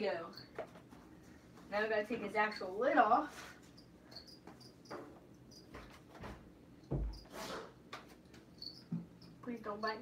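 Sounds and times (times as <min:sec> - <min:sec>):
crickets chirping: 0:03.7 - 0:05.8, 0:08.5 - 0:10.0.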